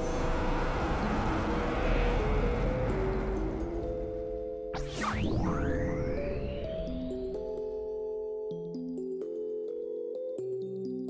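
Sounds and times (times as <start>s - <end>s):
rushing whoosh: 0.0s - 7.5s
synth intro music: 0.0s - 8.3s.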